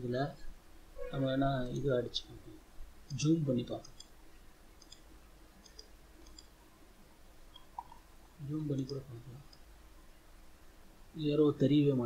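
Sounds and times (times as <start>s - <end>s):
person speaking: 1.0s - 4.0s, 7.6s - 9.6s
computer mouse click: 4.8s - 6.5s.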